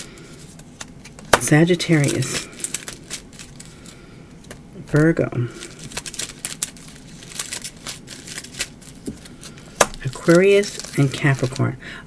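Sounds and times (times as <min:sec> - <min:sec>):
cards clicking and rustling: 0:00.0 - 0:11.7.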